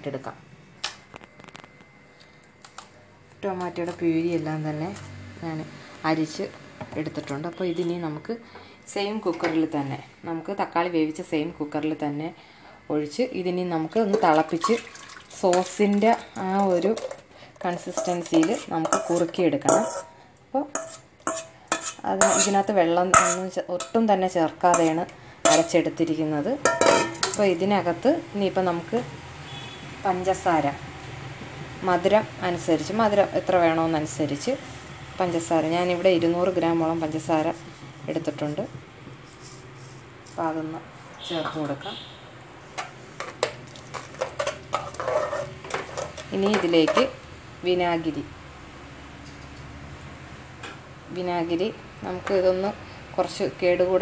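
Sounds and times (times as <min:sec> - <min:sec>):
metal spoon scraping blender jar: 0:15.5 - 0:24.0, 0:24.7 - 0:25.8, 0:42.8 - 0:47.1.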